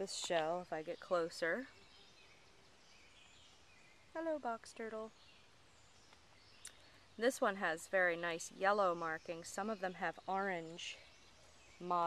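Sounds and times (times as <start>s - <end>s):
faint tick: 6.1s - 6.8s.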